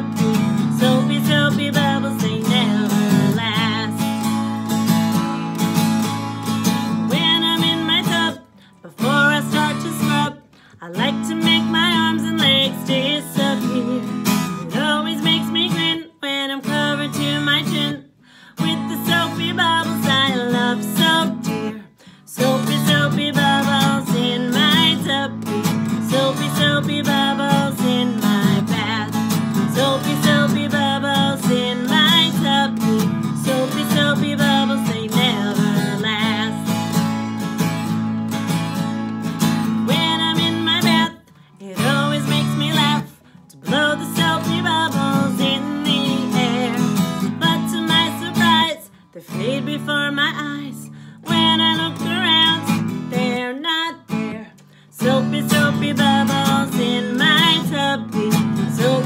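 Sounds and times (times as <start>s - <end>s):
acoustic guitar strumming: 0.0s - 59.0s
woman singing: 0.0s - 59.0s.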